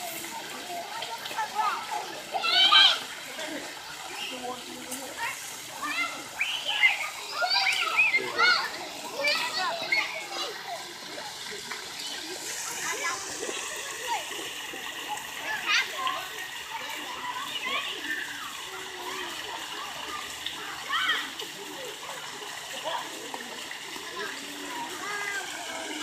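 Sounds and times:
children calling and squealing: 0:00.0 - 0:26.0
water spraying and splashing: 0:00.0 - 0:26.0
child shouting: 0:01.5 - 0:03.1, 0:05.8 - 0:10.7, 0:15.4 - 0:21.3.

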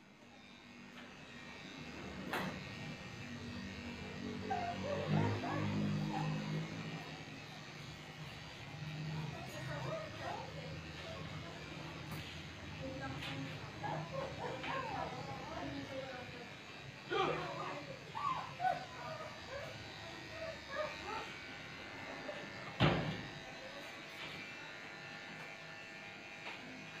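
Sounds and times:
electric pet clipper buzzing: 0:00.0 - 0:27.0.

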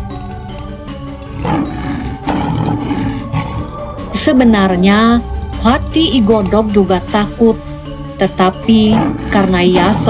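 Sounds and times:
background music: 0:00.0 - 0:10.0
lion roar: 0:01.2 - 0:04.8, 0:08.7 - 0:10.0.

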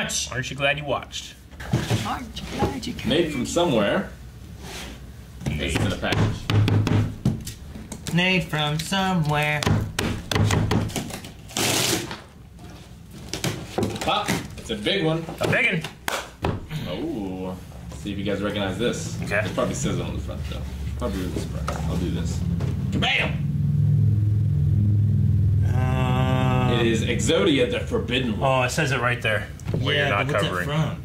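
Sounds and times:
knocks and taps on cardboard: 0:05.4 - 0:07.4, 0:09.5 - 0:11.1
deep rumbling tone: 0:22.0 - 0:28.4.

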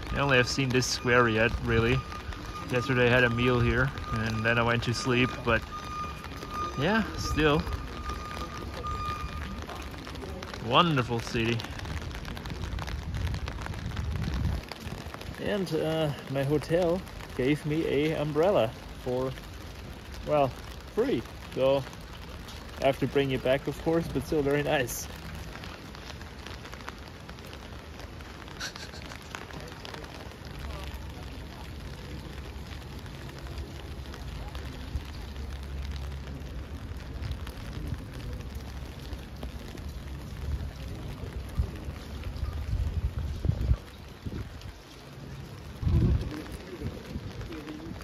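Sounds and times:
rain pattering on an umbrella: 0:00.0 - 0:48.0.

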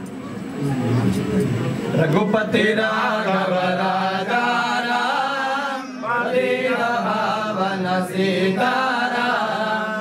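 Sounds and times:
person chanting mantra: 0:02.2 - 0:10.0.

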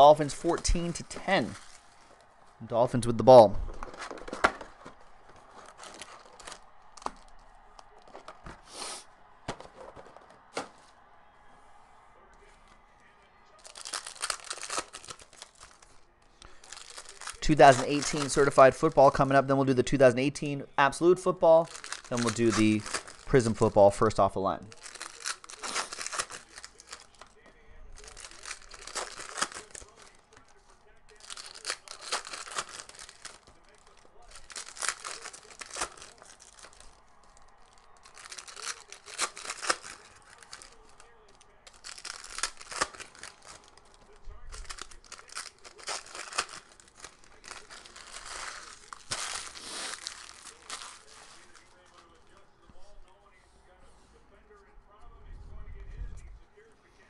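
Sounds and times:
foil wrappers tearing and crinkling: 0:00.0 - 0:02.5, 0:03.8 - 0:08.5, 0:13.6 - 0:20.0, 0:21.2 - 0:52.4.

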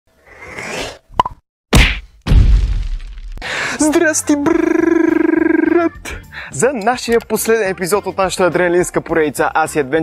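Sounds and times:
loud sudden hit: 0:01.8 - 0:03.5.

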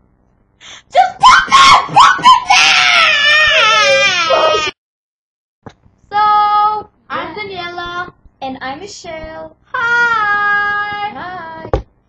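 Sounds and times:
girl crying and wailing: 0:00.8 - 0:04.8.

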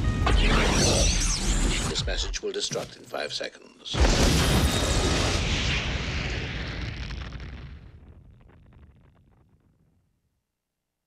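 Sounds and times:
explosion rush and rumble: 0:04.0 - 0:10.0
crackles: 0:04.0 - 0:10.4.

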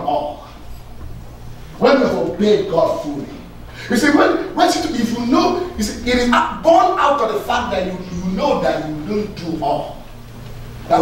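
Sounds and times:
man speaking emphatically: 0:00.0 - 0:00.4, 0:01.8 - 0:10.0.

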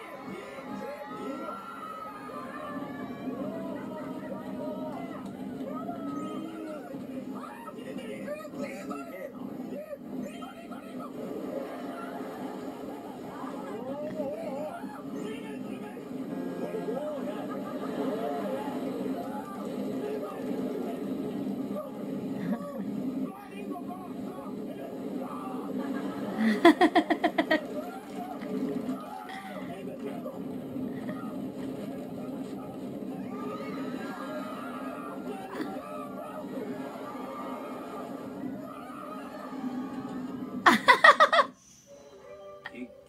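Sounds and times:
roller coaster rushing through speaker: 0:00.0 - 0:41.0.

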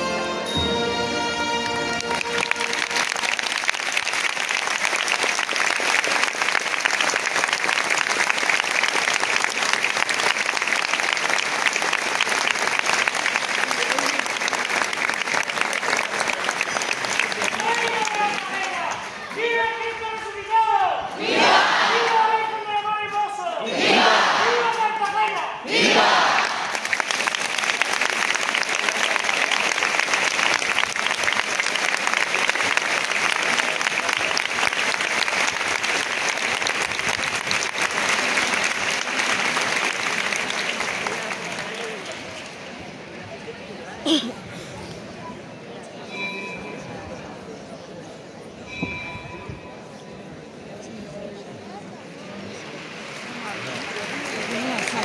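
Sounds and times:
crowd applauding: 0:00.0 - 0:19.5, 0:25.8 - 0:43.5, 0:52.0 - 0:55.0.

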